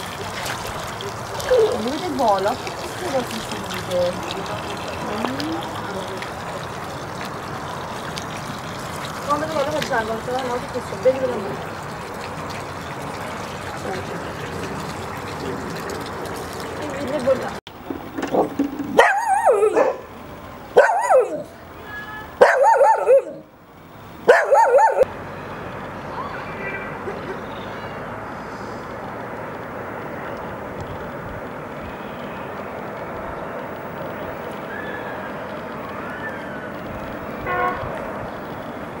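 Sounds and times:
small dog howling: 34.7 - 36.8.

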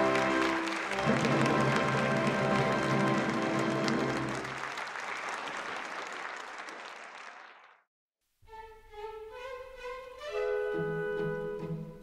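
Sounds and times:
orchestra holding closing chords: 0.0 - 4.5
audience applauding: 0.0 - 7.9.

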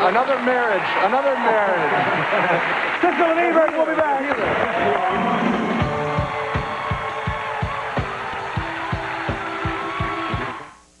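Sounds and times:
band music with drum beat: 5.2 - 10.6.

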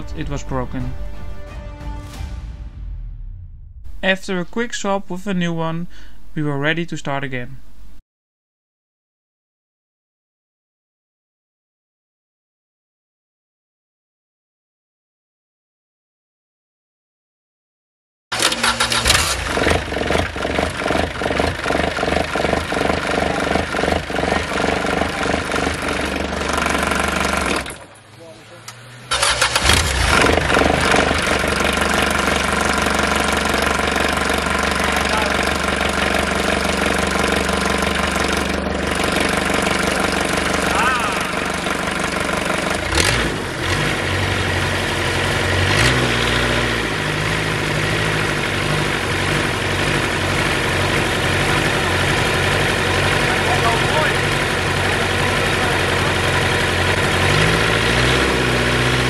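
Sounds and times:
small marine engine running: 18.3 - 28.0, 29.0 - 59.0.

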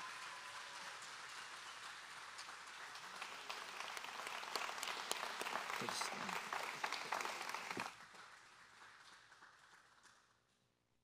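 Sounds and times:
congregation applauding: 0.0 - 10.4.

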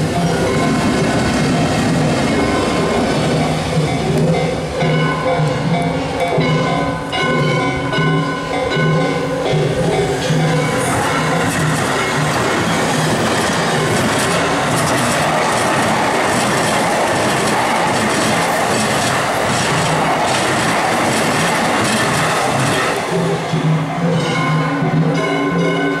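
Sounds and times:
train wheels rushing on rails: 0.0 - 26.0
wheels clacking over rail joints: 0.0 - 26.0.

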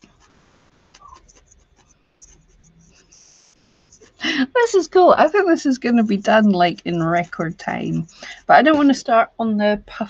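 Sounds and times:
felting needle scratching wool: 0.0 - 9.6.

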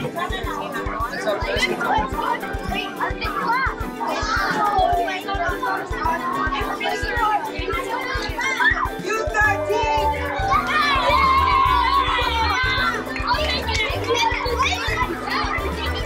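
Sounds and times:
background music with steady beat: 0.0 - 16.0
children talking and calling out: 0.0 - 16.0.

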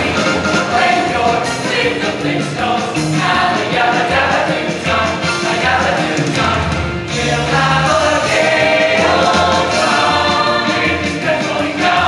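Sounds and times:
choir singing: 0.0 - 12.0
instrumental accompaniment: 0.0 - 12.0.

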